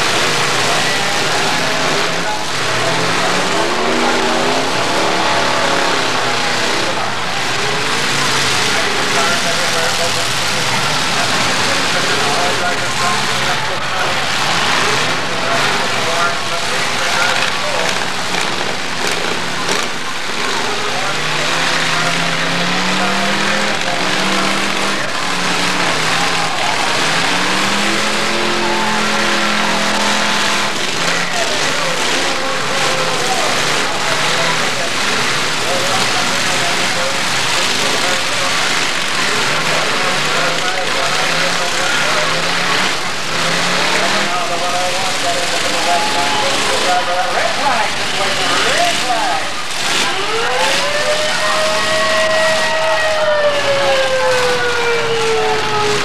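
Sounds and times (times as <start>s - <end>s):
car engines revving hard: 0.0s - 56.0s.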